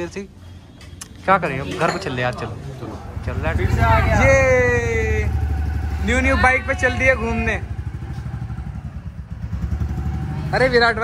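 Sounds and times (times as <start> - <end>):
motorcycle engine running: 3.0 - 11.0.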